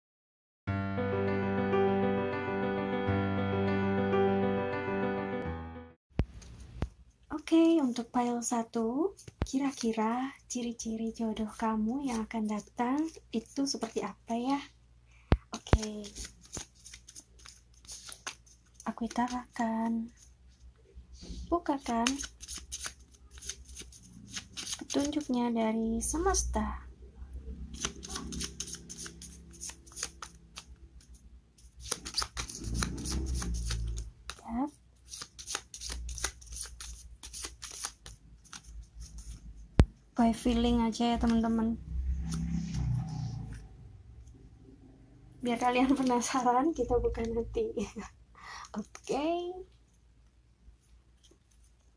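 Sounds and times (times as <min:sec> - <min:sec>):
cards being shuffled: 0:09.2 - 0:10.0, 0:11.9 - 0:14.0, 0:15.6 - 0:20.3, 0:21.8 - 0:25.4, 0:27.7 - 0:39.8, 0:48.7 - 0:49.2
card snap: 0:22.0 - 0:23.6.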